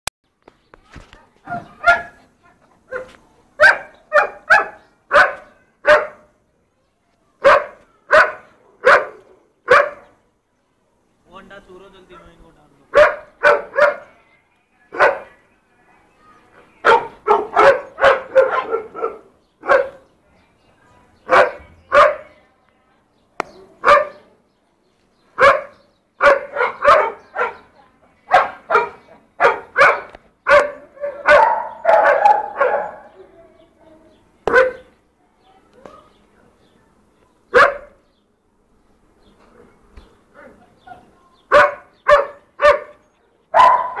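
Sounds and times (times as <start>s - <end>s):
dogs barking: 1.5s - 2.2s, 2.9s - 6.3s, 7.4s - 10.2s, 12.9s - 14.1s, 14.9s - 15.4s, 16.8s - 20.1s, 21.2s - 22.3s, 23.6s - 24.3s, 25.4s - 33.4s, 34.5s - 34.9s, 37.5s - 38.0s, 40.3s - 44.0s.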